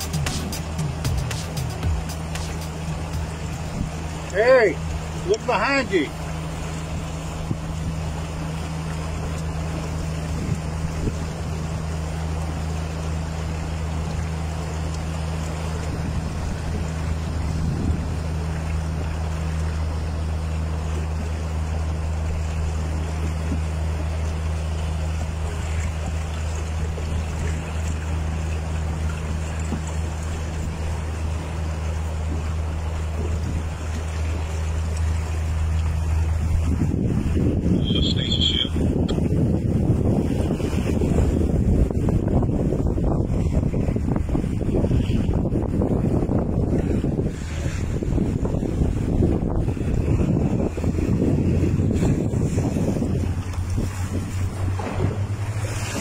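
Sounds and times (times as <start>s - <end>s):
low engine hum: 0.0s - 56.0s
water noise: 0.0s - 56.0s
wind: 0.0s - 56.0s
wind on microphone: 2.9s - 4.3s, 6.6s - 12.0s, 15.6s - 20.1s, 35.8s - 56.0s.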